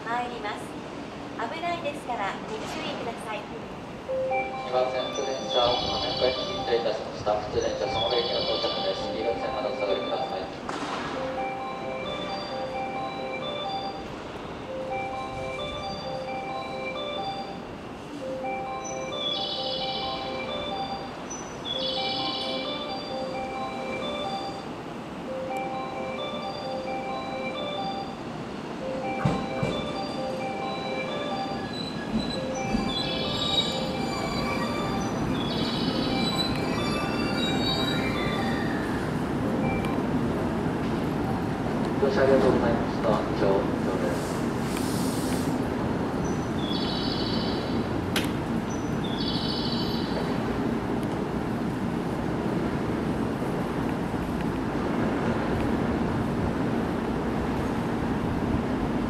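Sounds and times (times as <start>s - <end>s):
train rumble: 0.0s - 59.0s
train approach chime melody: 0.1s - 59.0s
high-pitched train squeals: 4.5s - 10.6s, 29.0s - 39.8s.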